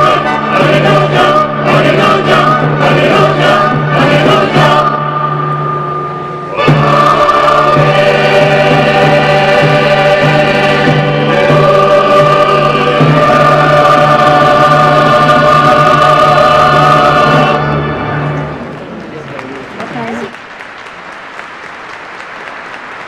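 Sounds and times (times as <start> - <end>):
choir singing a hymn: 0.0 - 18.6
steady held low note: 4.8 - 11.2.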